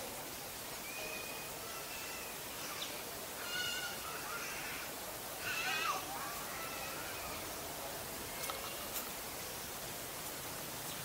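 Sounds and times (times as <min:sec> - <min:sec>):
outdoor hiss: 0:00.0 - 0:11.0
birds calling: 0:00.8 - 0:07.6.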